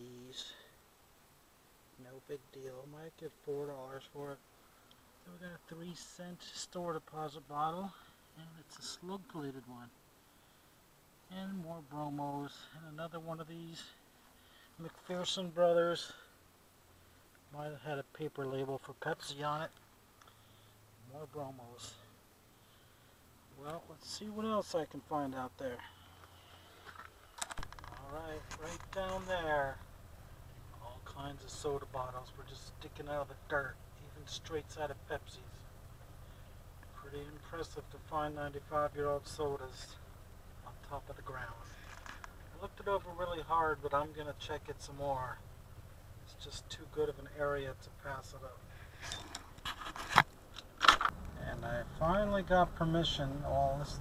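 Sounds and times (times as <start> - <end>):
vehicle engine rumble from inside: 20.4 - 54.0.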